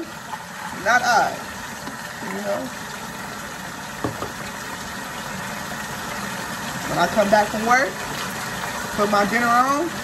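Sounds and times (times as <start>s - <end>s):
kitchen tap running: 0.0s - 10.0s
brief knock: 4.0s - 4.4s.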